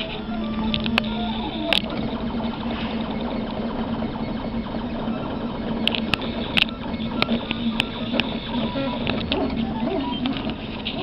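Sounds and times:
printer motors and fan whirring: 0:00.0 - 0:11.0.

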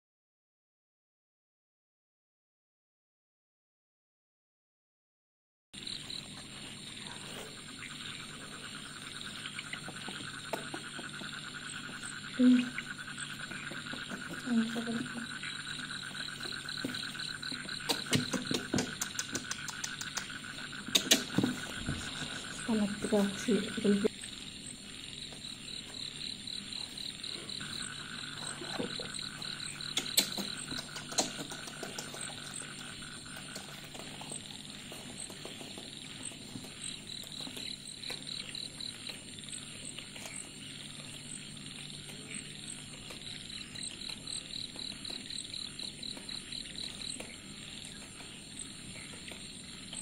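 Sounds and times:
low pulsed animal trill: 0:05.8 - 0:50.0
sharp clicks: 0:17.8 - 0:21.4, 0:29.9 - 0:32.2.

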